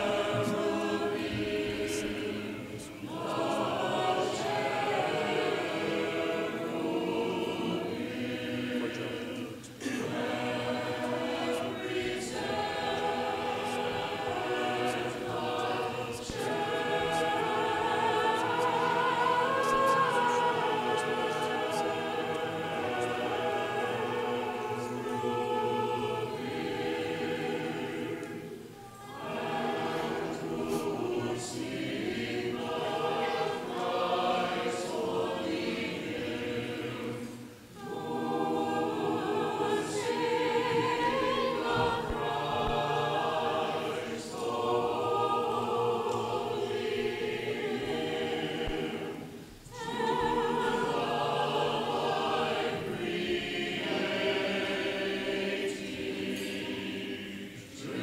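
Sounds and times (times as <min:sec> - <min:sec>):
choir chanting unaccompanied: 0:00.0 - 0:58.0.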